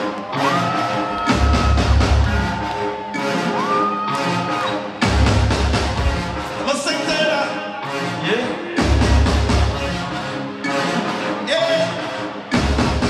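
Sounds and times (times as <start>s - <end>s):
heavy bass: 0.2s - 3.0s, 4.2s - 10.2s, 11.0s - 13.0s
steady drum beat: 5.0s - 6.6s.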